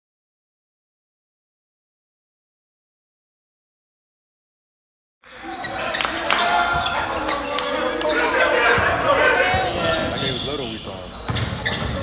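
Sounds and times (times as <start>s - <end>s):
voices of players and spectators: 5.2s - 12.0s
basketball bouncing on gym floor: 11.2s - 12.0s.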